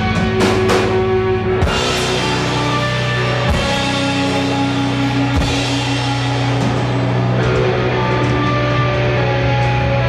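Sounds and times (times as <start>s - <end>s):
drums: 0.0s - 10.0s
electric guitar chords: 0.0s - 10.0s.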